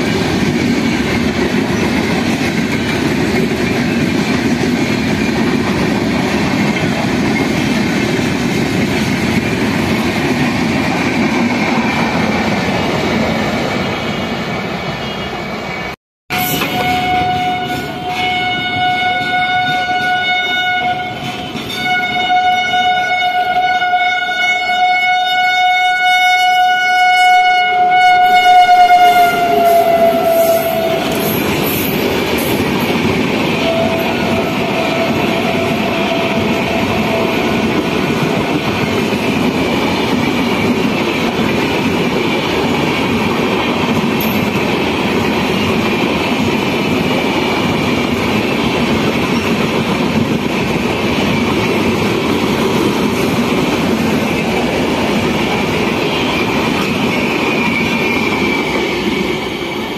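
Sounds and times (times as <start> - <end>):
train rumble and wheel rattle: 0.0 - 59.9
train horn blast: 16.3 - 31.4, 33.5 - 37.9.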